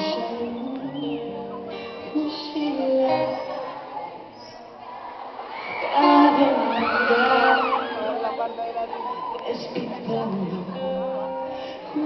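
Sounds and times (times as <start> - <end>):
crowd cheering and screaming: 0.0 - 12.0.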